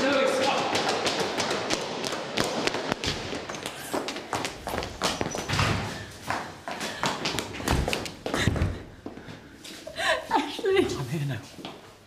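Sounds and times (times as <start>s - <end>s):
running footsteps on hard floor: 0.0s - 9.5s.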